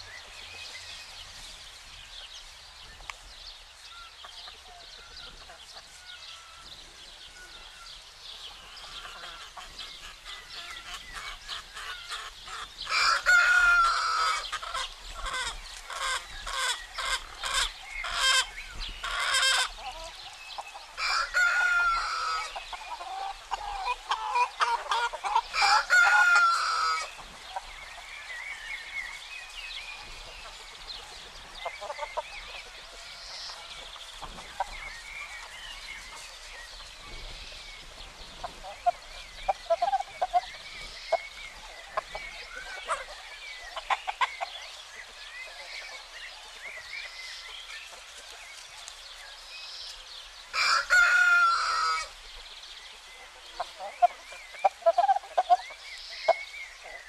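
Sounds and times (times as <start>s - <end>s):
hens clucking: 8.3s - 29.2s, 29.9s - 49.0s, 50.5s - 52.5s, 53.2s - 57.0s
rooster crowing: 12.9s - 14.4s, 21.0s - 22.5s, 25.5s - 27.1s, 50.5s - 52.1s.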